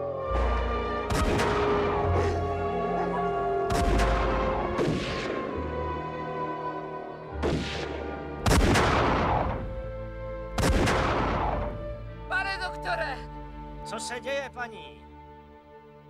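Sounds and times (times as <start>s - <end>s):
film score sustained tones: 0.0s - 13.0s
gunshots with echoing tail: 1.0s - 2.6s, 3.5s - 5.8s, 7.4s - 9.8s, 10.6s - 11.9s.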